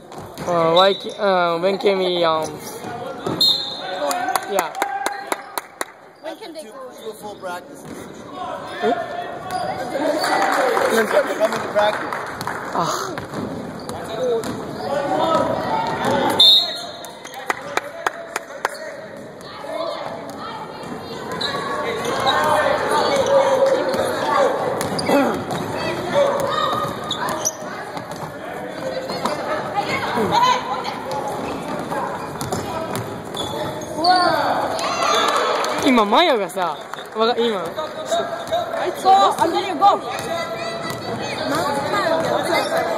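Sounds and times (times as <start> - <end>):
voices of players: 0.0 - 42.9
basketball bouncing on court: 24.7 - 29.4, 31.0 - 33.8, 38.4 - 42.9.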